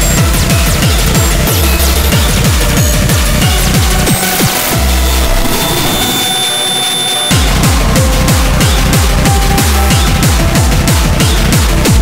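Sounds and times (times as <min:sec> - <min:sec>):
deep bass note: 0:00.0 - 0:12.0
thin high held tones: 0:05.4 - 0:07.5.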